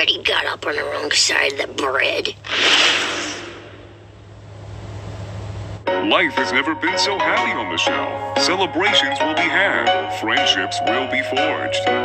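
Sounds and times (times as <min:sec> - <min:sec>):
faint rumble: 0:00.0 - 0:05.8
steady low hum: 0:00.0 - 0:08.9
hissing noise: 0:02.4 - 0:04.2.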